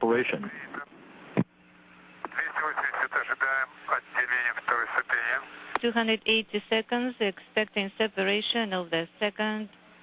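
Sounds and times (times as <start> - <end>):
faint radio hiss: 0.0 - 10.0
steady low hum: 0.0 - 10.0
voice speaking over radio: 2.3 - 5.5
radio click: 5.7 - 5.9.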